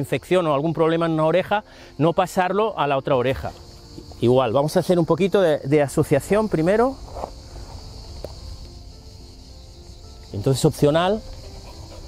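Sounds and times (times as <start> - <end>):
high-pitched insect drone: 0.0 - 12.0
soft background music: 0.0 - 12.0.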